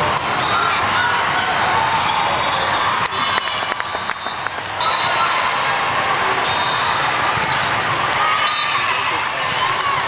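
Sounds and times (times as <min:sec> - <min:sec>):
many voices in a hall: 0:00.0 - 0:10.0.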